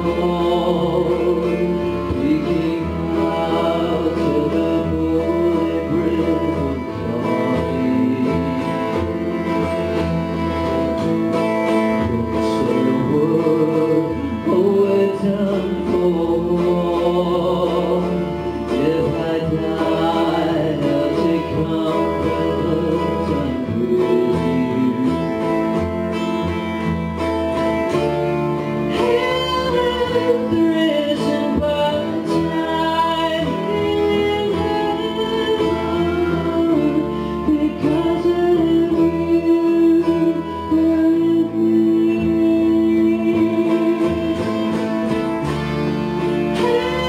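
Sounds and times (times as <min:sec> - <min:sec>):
person singing: 0:00.0 - 0:27.2, 0:27.9 - 0:47.0
acoustic guitar: 0:00.0 - 0:47.0
piano accordion: 0:00.0 - 0:47.0
upright double bass: 0:00.0 - 0:47.0.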